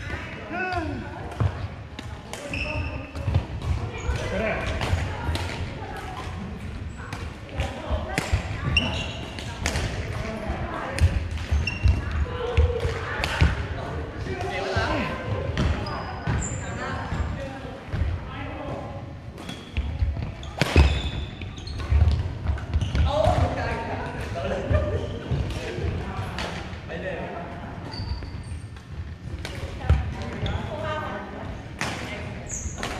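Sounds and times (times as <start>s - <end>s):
sneakers squeaking: 0.7s - 10.4s, 11.0s - 13.7s, 14.6s - 18.0s, 19.3s - 24.2s, 27.8s - 30.9s, 32.1s - 32.9s
rackets hitting shuttlecock: 7.1s - 10.2s, 20.5s - 21.1s.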